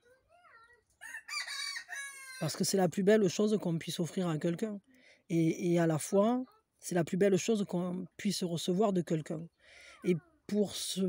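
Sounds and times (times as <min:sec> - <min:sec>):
rooster crowing: 0:01.0 - 0:02.6.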